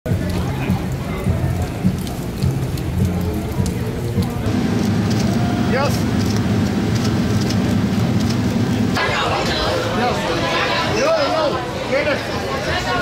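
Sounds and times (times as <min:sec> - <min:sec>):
rain falling on street: 0:00.1 - 0:09.6
low rumble: 0:04.5 - 0:09.0.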